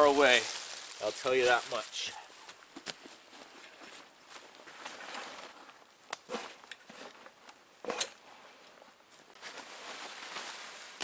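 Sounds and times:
footsteps in dry leaves: 0.0s - 5.6s, 9.4s - 11.0s.

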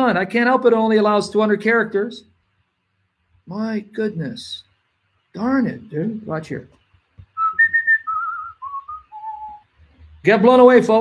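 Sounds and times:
man whistling a tune: 7.4s - 9.7s.

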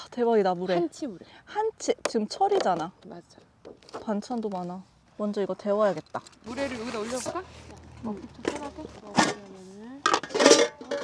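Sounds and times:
women talking: 0.0s - 11.0s.

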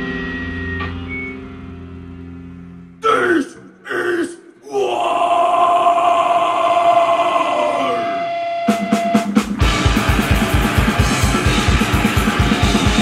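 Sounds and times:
man growling shouts: 3.0s - 8.2s
distorted electric guitar chord: 9.6s - 13.0s.

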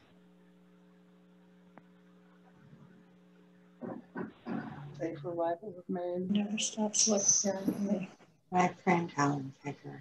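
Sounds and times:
low electrical hum: 0.0s - 10.0s
person speaking: 3.8s - 10.0s.

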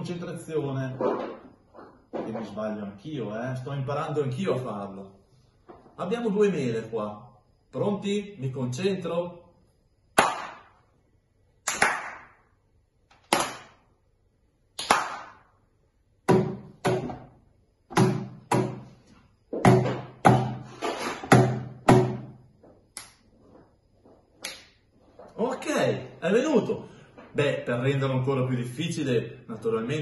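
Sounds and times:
finger snaps: 22.9s - 23.3s, 24.4s - 24.8s.

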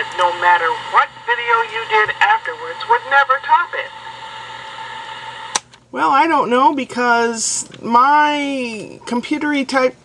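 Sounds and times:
woman speaking: 0.0s - 4.0s.

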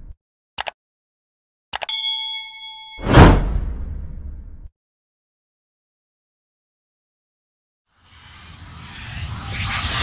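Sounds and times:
bell-like ding: 1.9s - 3.4s.

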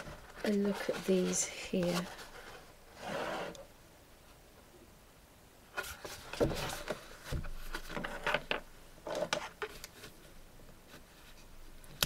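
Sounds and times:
handling rustle: 0.0s - 3.5s, 5.8s - 12.0s.

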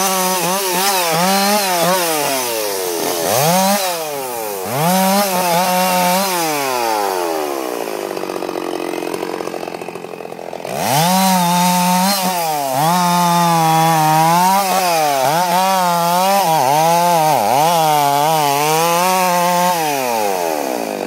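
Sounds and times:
chainsaw revving and idling: 0.0s - 21.0s.

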